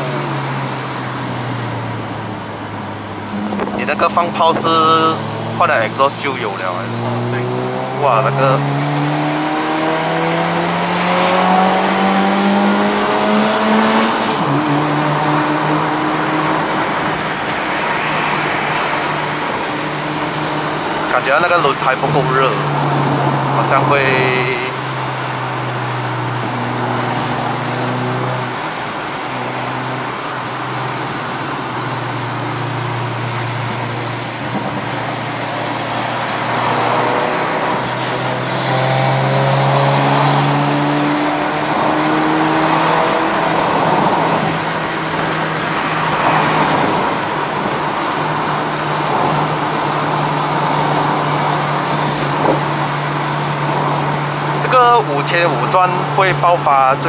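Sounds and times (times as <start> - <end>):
car engine pulling: 0.0 - 57.0
tyre and road noise: 0.0 - 57.0.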